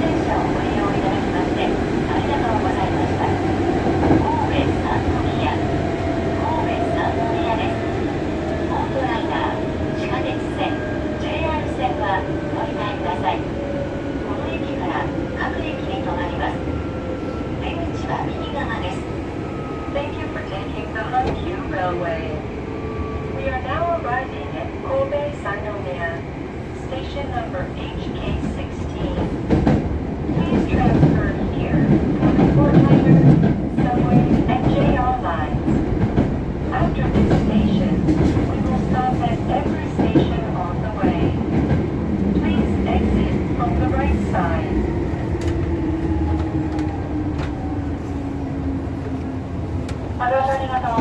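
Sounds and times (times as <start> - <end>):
electric train whine: 41.8 - 51.0.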